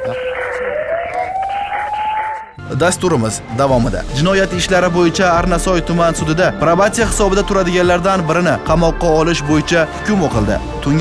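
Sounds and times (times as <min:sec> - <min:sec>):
siren-like rising tone: 0:00.0 - 0:02.6.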